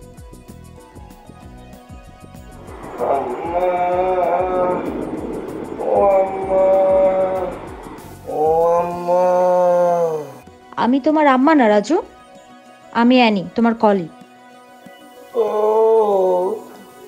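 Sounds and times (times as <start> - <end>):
man groaning: 2.7 - 10.4, 15.4 - 16.7.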